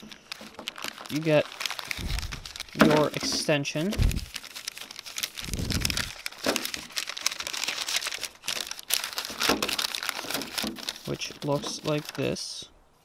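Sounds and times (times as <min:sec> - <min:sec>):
paper crinkling: 0:00.0 - 0:12.5.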